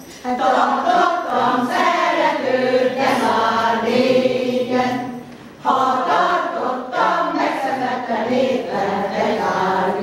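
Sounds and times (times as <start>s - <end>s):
women's choir singing: 0.0s - 10.0s.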